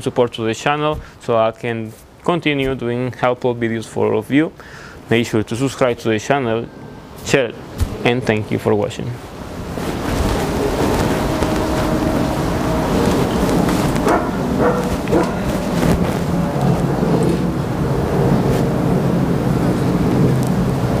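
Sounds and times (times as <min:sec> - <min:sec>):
outdoor background noise: 0:00.0 - 0:21.0
wind rumbling on microphone: 0:09.2 - 0:21.0.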